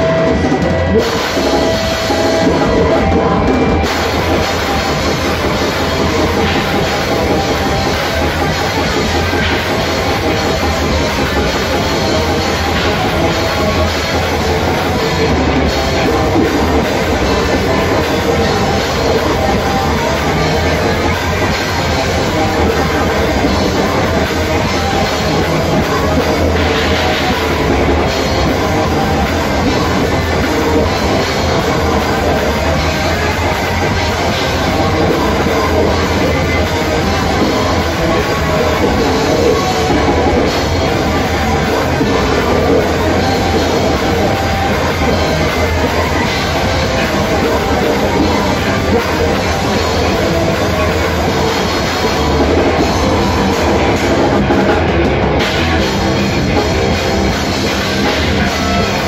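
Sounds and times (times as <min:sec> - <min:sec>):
bass: 0:00.0 - 0:59.0
distorted electric guitars: 0:00.0 - 0:59.0
fast drum kit: 0:00.0 - 0:59.0
heavy metal band playing: 0:00.0 - 0:59.0.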